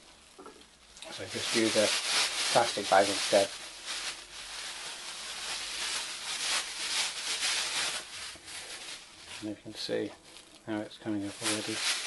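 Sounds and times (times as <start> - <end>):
plastic bag rubbing on clay: 1.2 - 10.5, 11.1 - 12.0.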